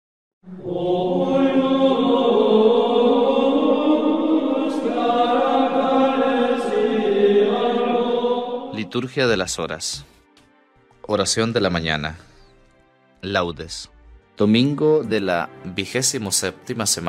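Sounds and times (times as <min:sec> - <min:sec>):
slow chanted vocal music: 0:00.4 - 0:10.8.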